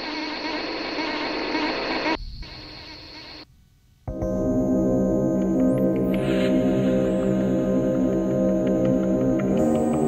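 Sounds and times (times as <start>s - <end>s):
buzzing synthesizer ambient music: 4.1s - 10.0s.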